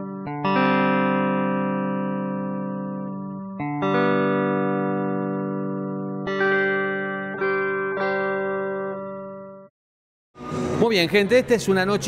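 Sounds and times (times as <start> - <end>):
slow guitar chords ringing: 0.0 - 9.7.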